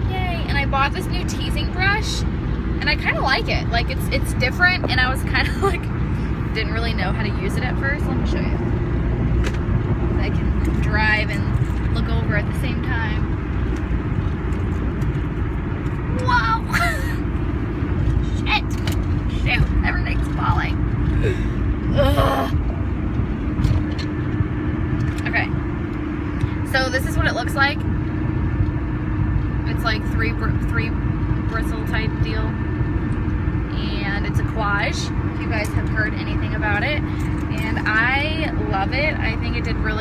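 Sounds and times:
faint engine hum: 0.0s - 40.0s
road rumble: 0.0s - 40.0s.

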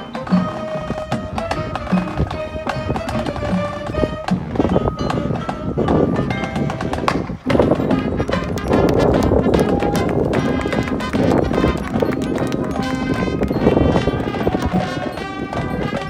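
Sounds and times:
galloping hooves clip-clop: 0.0s - 16.0s
marching band playing: 0.0s - 16.0s.

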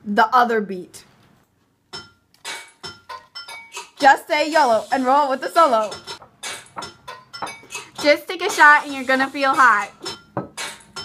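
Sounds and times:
hip-hop drum beat: 2.0s - 11.0s.

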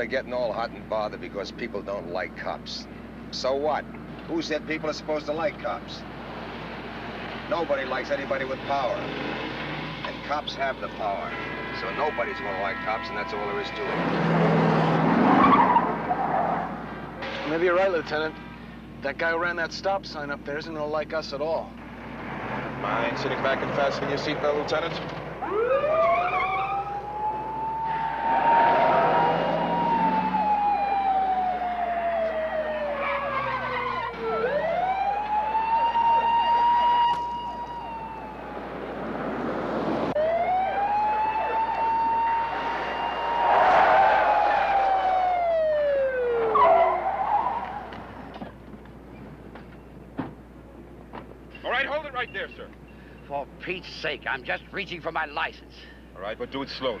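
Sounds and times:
passing car noise: 4.0s - 18.9s, 21.8s - 49.6s
police siren wailing: 11.3s - 16.8s, 25.4s - 39.0s, 40.1s - 48.2s.

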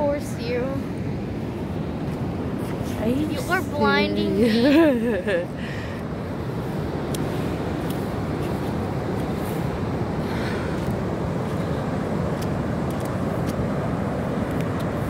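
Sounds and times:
ocean surf breaking: 0.0s - 15.0s.

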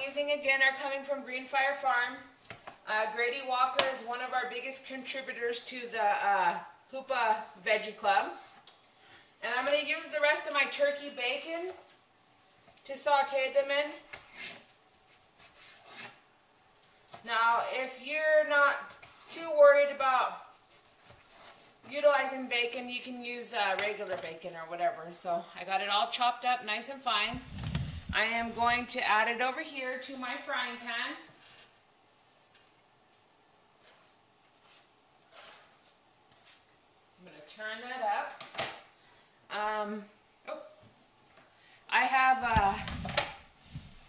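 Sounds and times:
soft scrapes and rustles: 14.1s - 17.3s, 20.3s - 22.0s, 27.4s - 28.8s, 31.3s - 33.2s, 33.8s - 37.2s, 42.8s - 44.0s.

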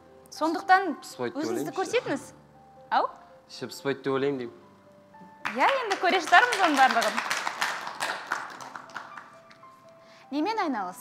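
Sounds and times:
audience applauding: 5.4s - 9.7s.

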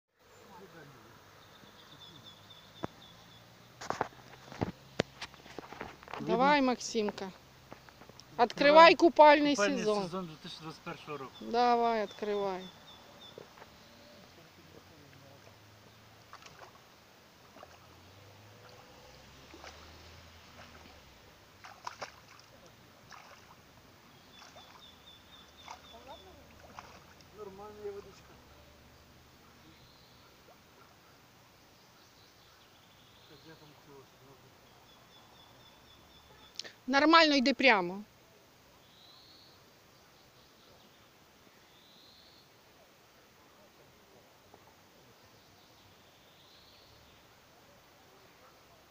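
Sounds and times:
legs wading through water: 10.1s - 31.8s
sharp splashes: 14.9s - 29.3s.

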